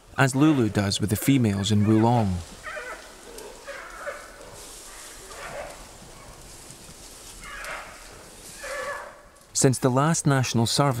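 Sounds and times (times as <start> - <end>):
giant pandas calling: 1.4 - 5.8, 7.4 - 8.0.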